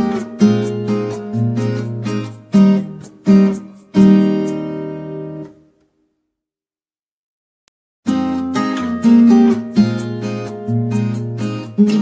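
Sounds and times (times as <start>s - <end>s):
acoustic guitar strumming chords: 0.0s - 5.7s, 8.1s - 12.0s.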